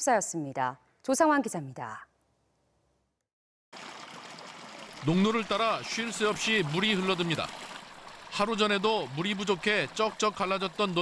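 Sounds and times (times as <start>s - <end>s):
water flowing along ditch: 3.7s - 11.0s.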